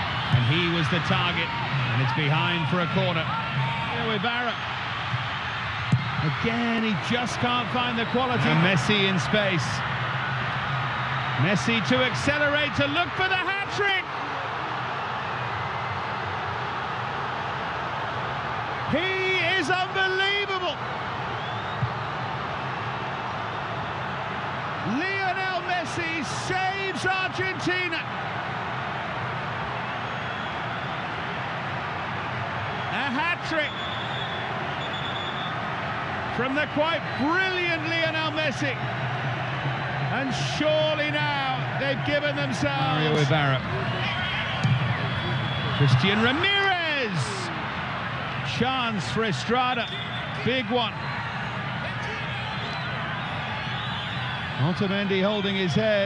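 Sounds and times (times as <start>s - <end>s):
stadium crowd noise: 0.0s - 56.0s
commentator speaking: 40.1s - 43.6s.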